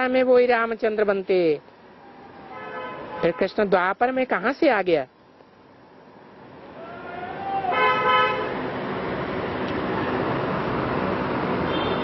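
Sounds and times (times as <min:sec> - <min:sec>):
horn-like honk: 0:07.7 - 0:08.5.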